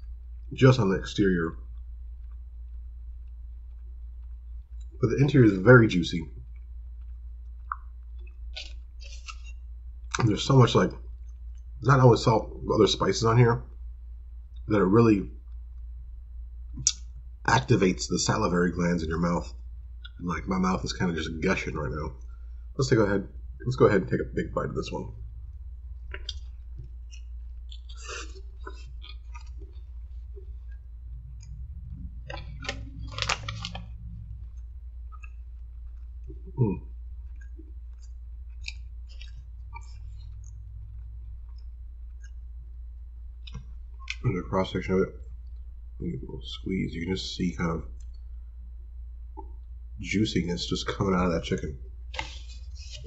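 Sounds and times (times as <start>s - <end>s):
steady low hum: 0.0s - 53.0s
wet mouth noises: 6.4s - 10.4s, 26.0s - 42.4s, 43.4s - 44.3s
person chewing: 7.6s - 9.5s, 26.1s - 31.6s, 37.2s - 40.4s.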